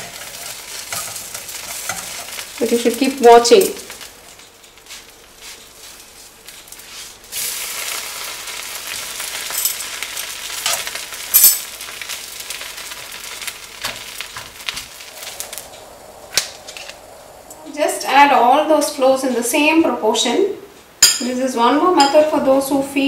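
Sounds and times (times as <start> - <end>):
batter sizzling in frying pan: 0.0 - 17.0.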